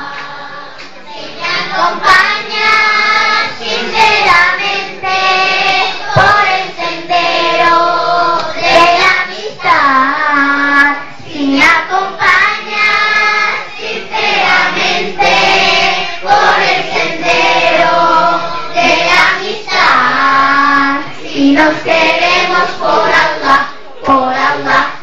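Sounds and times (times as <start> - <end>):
girls choir singing: 0.0 - 25.0.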